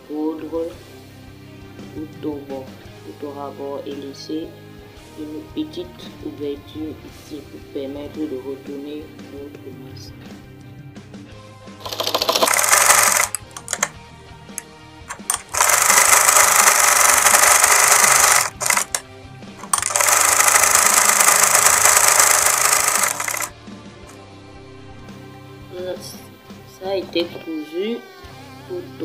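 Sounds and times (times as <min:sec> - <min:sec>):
electric sewing machine stitching: 0:11.8 - 0:13.9, 0:15.1 - 0:19.0, 0:19.6 - 0:23.5.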